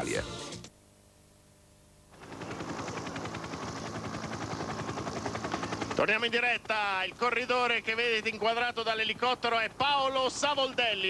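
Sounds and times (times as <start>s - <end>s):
helicopter rotor chopping: 2.1s - 11.0s.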